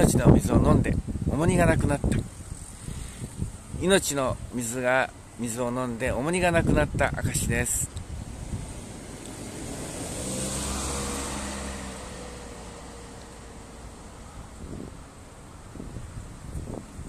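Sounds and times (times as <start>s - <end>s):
motor vehicle passing by: 8.1s - 17.0s.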